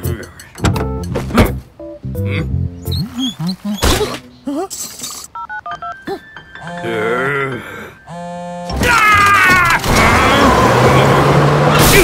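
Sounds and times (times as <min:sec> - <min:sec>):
cartoon background music: 0:00.0 - 0:09.2.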